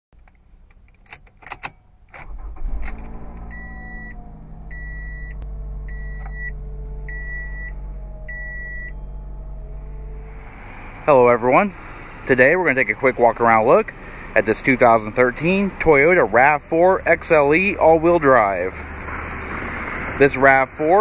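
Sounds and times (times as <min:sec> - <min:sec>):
car engine starting and idling: 0:00.2 - 0:21.0
dashboard warning chime beeping: 0:03.4 - 0:09.2.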